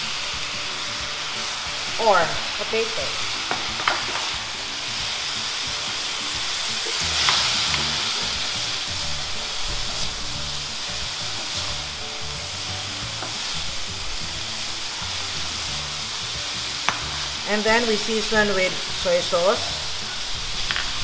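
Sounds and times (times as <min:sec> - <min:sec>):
vegetables sizzling in hot oil: 0:00.0 - 0:21.0
spatulas stirring in a wok: 0:00.2 - 0:21.0.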